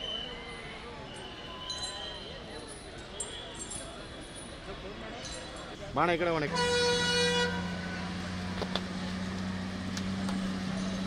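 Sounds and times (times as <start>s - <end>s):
truck horn: 6.5s - 8.4s
truck engine idling: 6.6s - 11.0s.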